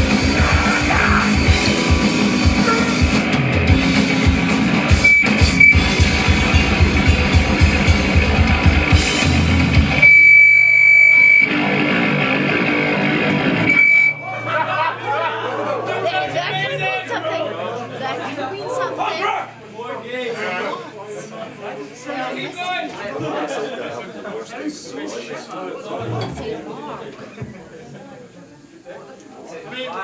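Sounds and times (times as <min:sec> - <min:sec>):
drum kit: 0:00.0 - 0:10.5
distorted electric guitars: 0:00.0 - 0:14.9
crowd chatter: 0:00.0 - 0:30.0.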